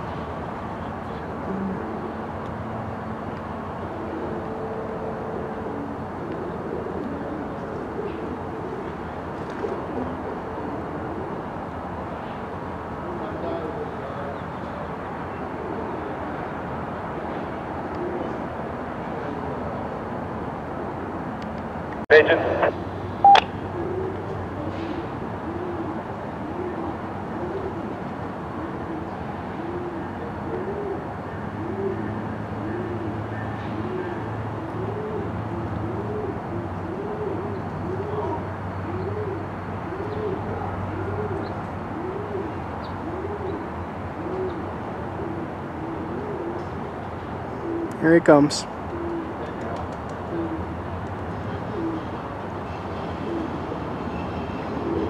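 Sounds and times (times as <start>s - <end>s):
diesel locomotive engine hum: 0.0s - 9.3s
bird cooing: 1.2s - 2.3s, 3.9s - 11.6s, 13.0s - 16.5s, 17.8s - 18.5s, 23.3s - 48.0s, 48.8s - 55.0s.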